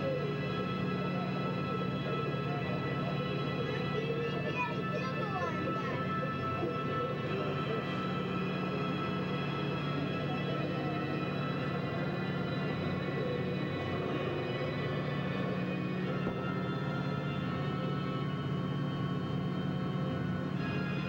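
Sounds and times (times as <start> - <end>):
constant low drone: 0.0 - 21.0
eerie slow soundtrack music: 0.0 - 21.0.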